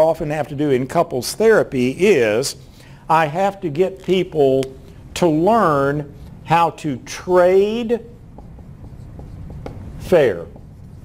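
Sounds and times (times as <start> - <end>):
pen writing on a surface: 8.2 - 11.0.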